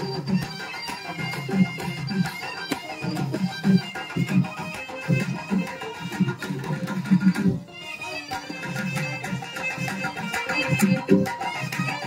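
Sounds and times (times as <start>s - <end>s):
drums beating lively rhythm: 0.0s - 12.0s.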